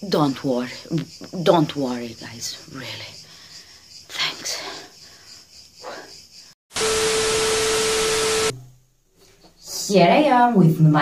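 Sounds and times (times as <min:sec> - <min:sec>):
static hiss with steady tone: 0:06.7 - 0:09.1.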